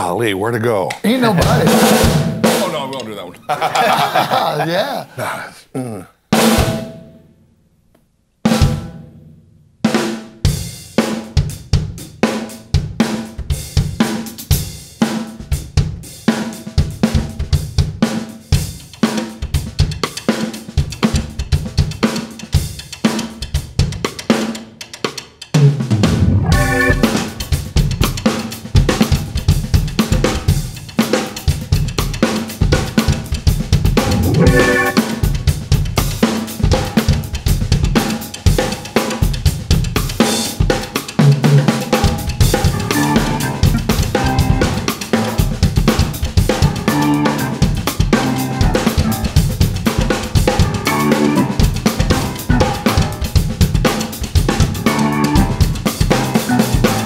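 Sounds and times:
drum kit playing funk groove: 0.8 - 5.4, 6.3 - 7.0, 8.5 - 57.0
keyboard bass notes and chords: 26.1 - 27.4, 34.0 - 35.3, 42.6 - 45.5, 46.8 - 49.4, 50.6 - 53.2, 54.6 - 57.0.

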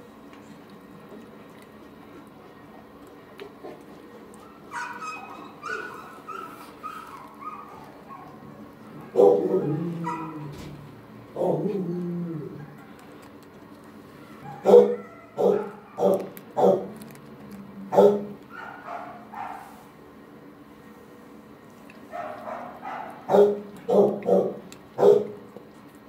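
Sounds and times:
dog bark: 4.7 - 8.4, 9.0 - 10.4, 14.4 - 16.9, 17.9 - 19.7, 22.1 - 25.4
dog whimpering: 4.7 - 8.4.

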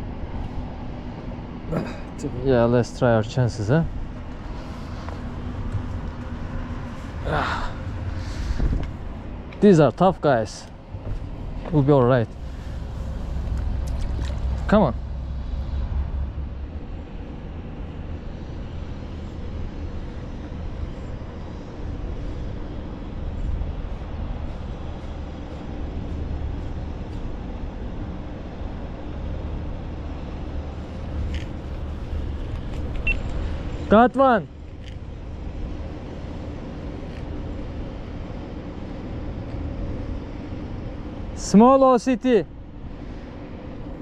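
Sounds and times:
low outdoor rumble: 0.0 - 44.0.

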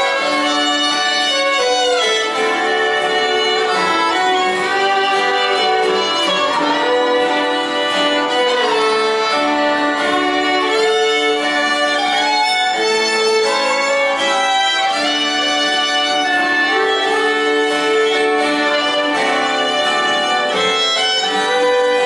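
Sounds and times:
acoustic guitars: 0.0 - 22.0
fiddles playing slow melody: 0.0 - 22.0.

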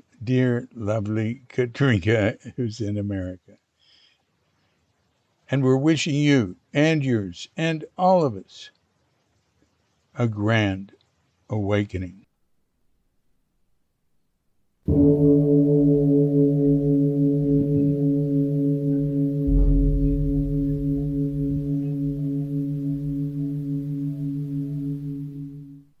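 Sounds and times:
large bell ringing: 14.9 - 26.0.

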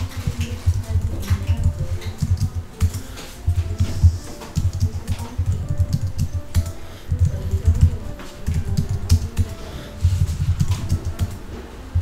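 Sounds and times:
typing on a computer keyboard: 0.0 - 11.4.

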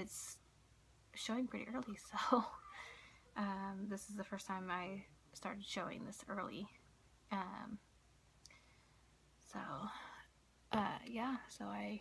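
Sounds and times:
woman speaking: 0.0 - 0.4, 1.2 - 7.9, 9.5 - 12.0.

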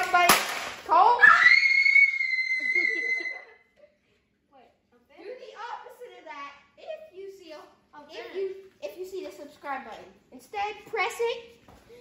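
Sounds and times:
boy screaming: 1.1 - 3.5.

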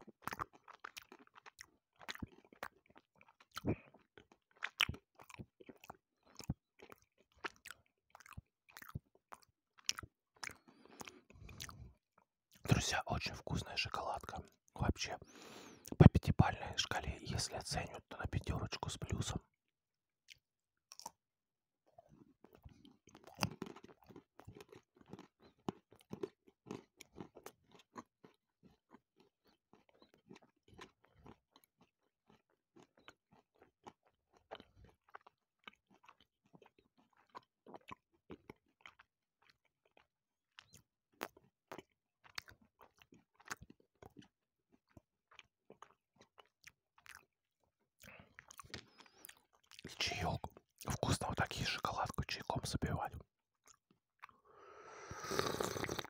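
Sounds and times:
chewing crunchy nuts: 0.0 - 19.5, 20.2 - 21.2, 21.8 - 56.0.

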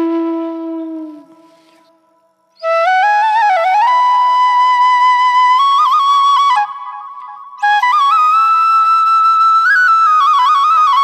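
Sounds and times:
flute long note: 0.0 - 1.9.

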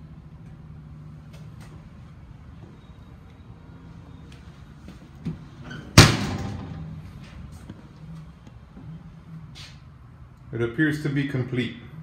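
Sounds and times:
oven door slamming shut: 5.8 - 6.9.

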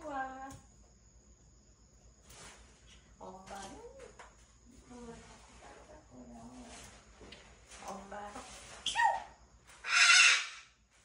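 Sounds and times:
parrot harsh squawk: 8.9 - 10.8
parrot whistle-like call: 9.8 - 10.7.

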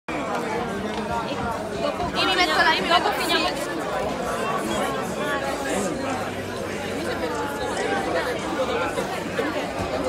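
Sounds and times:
crowd chatter: 0.1 - 10.0.

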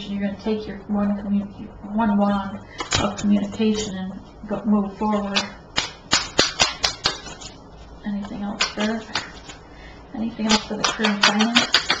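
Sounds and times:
cards being shuffled: 5.3 - 7.6, 8.2 - 9.6, 10.5 - 12.0.

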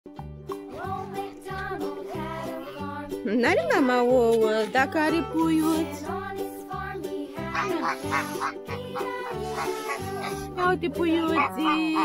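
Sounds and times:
children's background music: 0.1 - 12.0
geese honking: 7.5 - 12.0.

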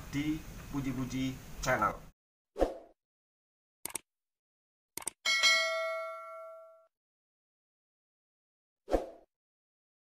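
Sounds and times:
double mouse click: 5.0 - 5.2
notification bell ding: 5.3 - 6.9.

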